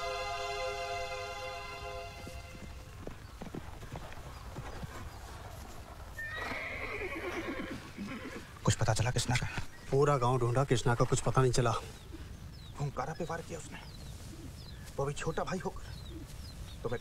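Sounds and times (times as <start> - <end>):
hoof clops: 2.2 - 11.8
horse whinnying: 6.2 - 8.6.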